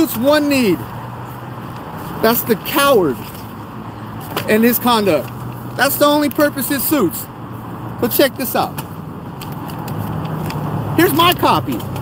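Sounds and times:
car engine and tyres: 0.0 - 12.0
low hum of traffic: 0.0 - 12.0.

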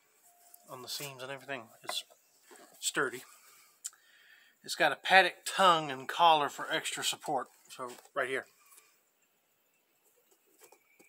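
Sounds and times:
faint high chirp: 0.0 - 1.2, 9.6 - 11.0.

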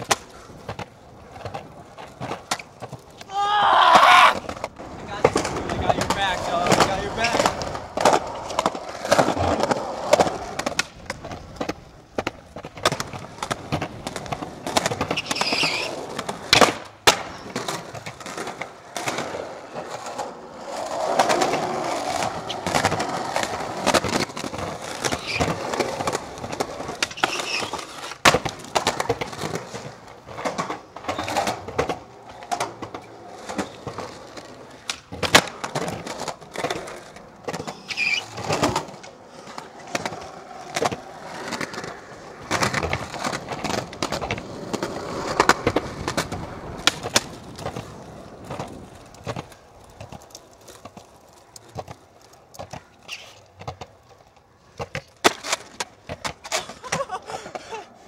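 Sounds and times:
skateboard clacks: 0.0 - 58.0
skateboards rolling on concrete: 0.0 - 58.0.

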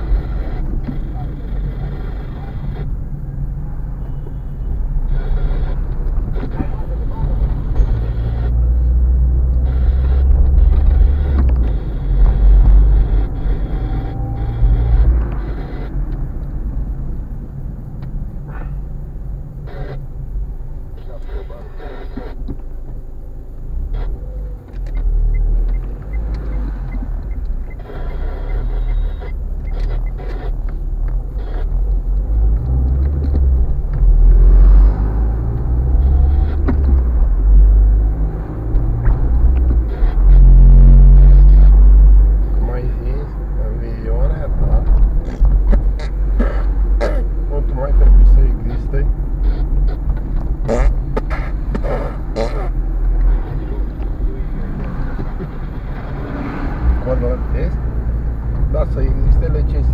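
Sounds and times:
car engine and road rumble: 0.0 - 59.9.

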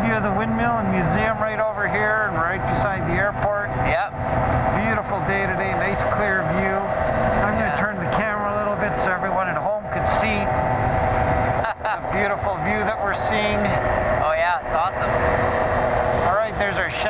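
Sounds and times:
man talking: 0.0 - 10.6, 11.6 - 15.2, 16.2 - 17.0
aircraft engine and propeller droning: 0.0 - 17.0
wind rush: 0.0 - 17.0.

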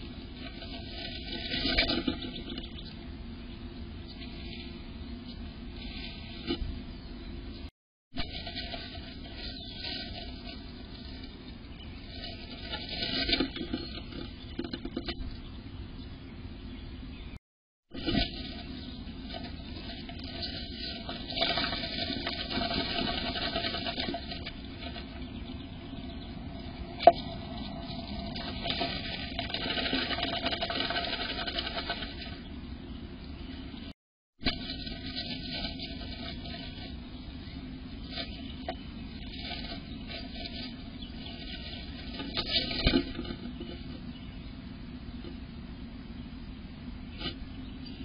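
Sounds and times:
dry grass rustling: 0.0 - 3.0, 4.0 - 6.7, 7.4 - 15.2, 17.9 - 32.6, 34.4 - 44.5
knocks and scrabbling: 0.0 - 3.0, 8.2 - 15.4, 17.9 - 32.5, 34.4 - 37.3, 38.0 - 44.3
scratching on wood: 8.2 - 15.2, 17.9 - 26.0, 27.0 - 32.5, 38.0 - 44.1
bird scratching and tapping: 19.3 - 25.2, 27.0 - 32.4.

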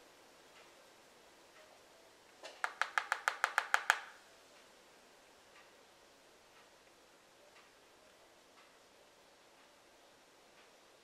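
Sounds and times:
makeup brush tapping palette: 2.5 - 4.2
faint ticks: 6.5 - 11.0.

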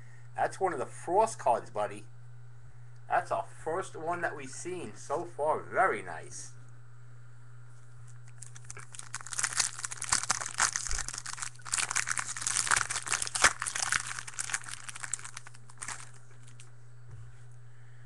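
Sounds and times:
foil wrapper crinkling: 8.1 - 16.7.

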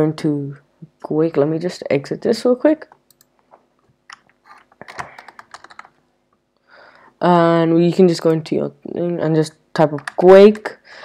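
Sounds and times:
computer keyboard typing: 4.8 - 6.0.

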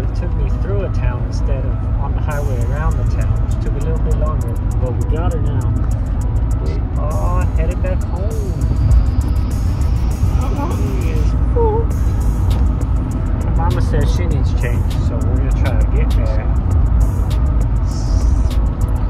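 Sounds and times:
car road and engine rumble: 0.0 - 19.0
music: 0.0 - 19.0.

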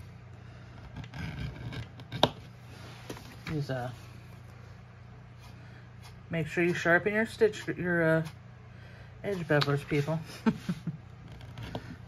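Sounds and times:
steady low hum: 0.0 - 12.0
edge beveler rasping on leather: 0.9 - 2.3.

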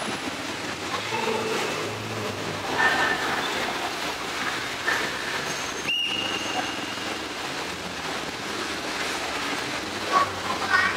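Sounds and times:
tyres hissing on wet surface: 0.0 - 10.9.

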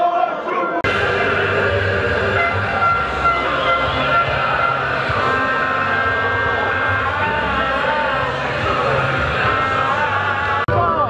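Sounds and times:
protest crowd noise: 0.0 - 11.0
long held tones: 0.8 - 10.7.

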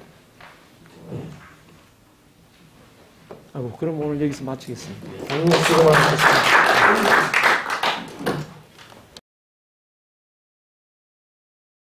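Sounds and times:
audience clapping: 5.2 - 8.9.

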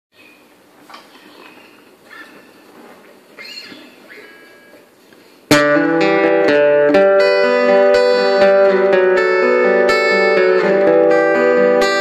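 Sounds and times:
rising string squeak: 3.4 - 4.9.

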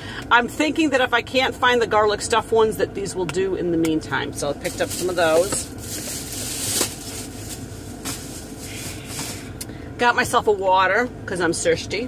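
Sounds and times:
car cabin fan hum: 0.0 - 12.0.

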